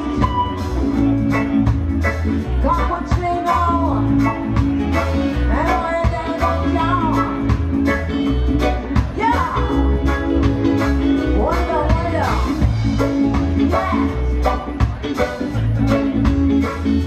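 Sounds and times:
guitar: 0.0s - 17.0s
heavy bass line: 0.0s - 17.0s
live reggae band playing: 0.0s - 17.0s.

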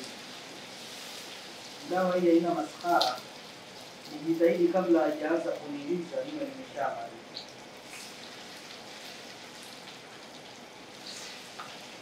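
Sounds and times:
oil sizzling in a pot: 0.0s - 12.0s.

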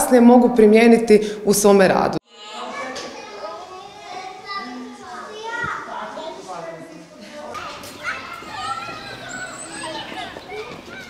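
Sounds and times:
toddlers chattering: 2.2s - 11.0s.

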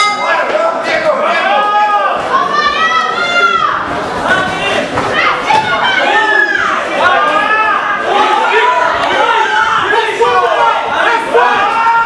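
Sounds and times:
people shouting in echoing hall: 0.0s - 12.0s.

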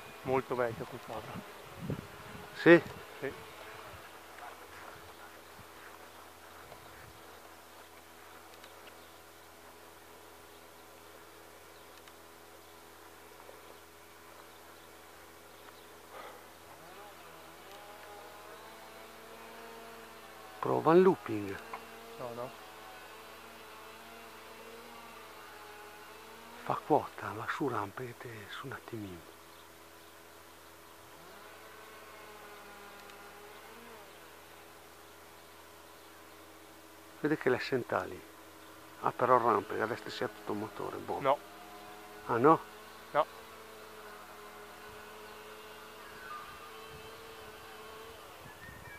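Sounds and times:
distant model glider motor whine: 0.0s - 48.9s.

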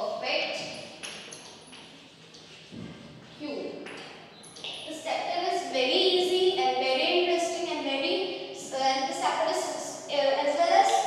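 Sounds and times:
chalk tapping and scraping on blackboard: 1.0s - 3.3s.

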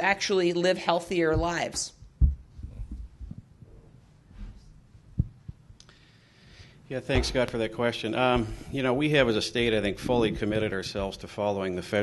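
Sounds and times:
microphone handling thumps and knocks: 1.3s - 5.8s, 7.1s - 7.7s, 9.6s - 11.2s.

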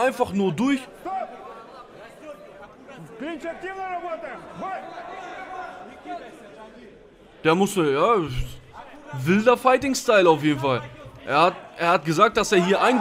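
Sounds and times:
crowd chatter: 0.0s - 13.0s
referee shouting: 12.1s - 13.0s
people shouting: 12.5s - 13.0s.

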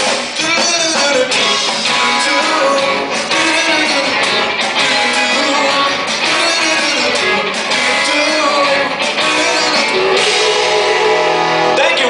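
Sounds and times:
drum kit: 0.0s - 12.0s
electric guitar: 0.0s - 12.0s.

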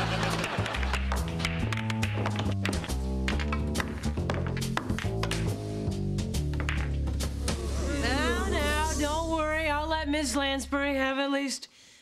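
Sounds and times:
background music with bass line: 0.0s - 11.0s
billiard balls clacking: 0.3s - 5.6s, 6.3s - 7.4s.

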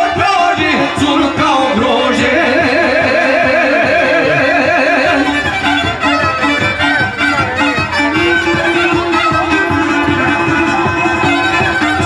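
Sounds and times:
fiddle melody: 0.0s - 12.0s
rhythmic string accompaniment: 0.0s - 12.0s.

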